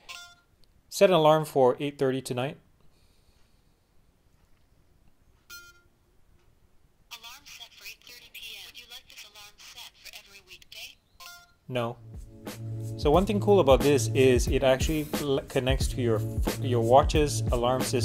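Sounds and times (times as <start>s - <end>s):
smartwatch chime: 5.5s - 5.9s, 11.2s - 11.6s
voice assistant speaking: 7.1s - 12.0s.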